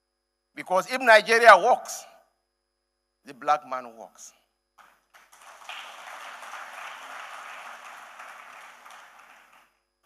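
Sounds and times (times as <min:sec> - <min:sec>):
audience applauding: 0:04.8 - 0:09.8.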